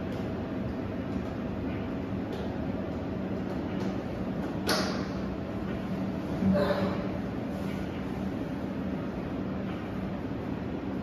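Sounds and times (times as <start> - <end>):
low machinery hum: 0.0 - 11.0.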